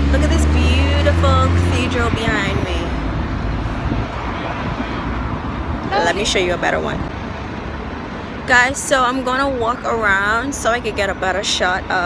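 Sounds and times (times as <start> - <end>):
passing traffic: 0.0 - 12.0
wind rumbling on microphone: 0.0 - 12.0.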